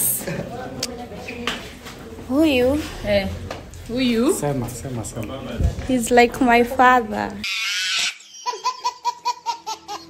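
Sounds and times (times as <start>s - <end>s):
baby laughing: 7.4s - 10.0s.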